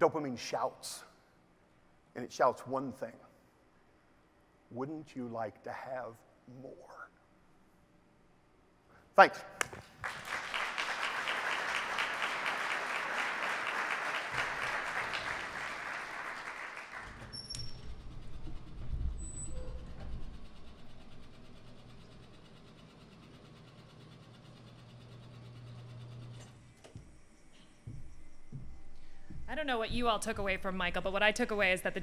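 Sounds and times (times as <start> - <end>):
audience applauding: 9.6 - 17.3
low steady hum: 27.1 - 32.0.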